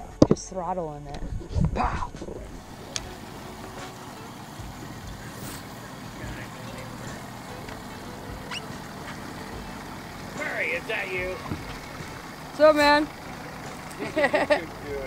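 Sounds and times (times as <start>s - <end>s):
boat motor humming: 2.4s - 15.0s.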